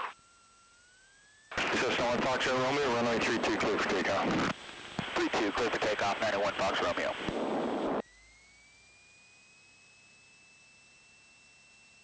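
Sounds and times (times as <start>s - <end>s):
thin electrical whine: 0.0s - 12.0s.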